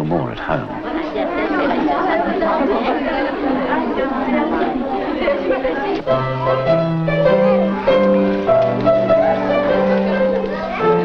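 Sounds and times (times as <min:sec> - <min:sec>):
children and women chattering: 0:00.0 - 0:11.0.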